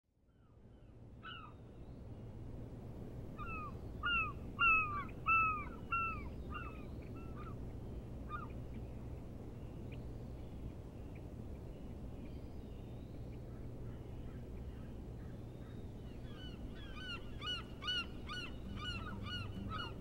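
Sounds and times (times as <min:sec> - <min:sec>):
low ambient rumble: 0:00.2 - 0:20.0.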